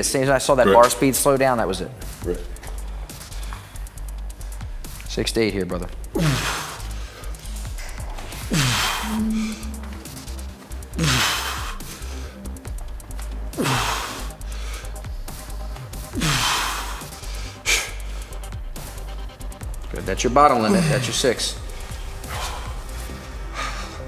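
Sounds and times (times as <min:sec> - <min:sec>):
electronic music with bass: 0:00.4 - 0:23.6.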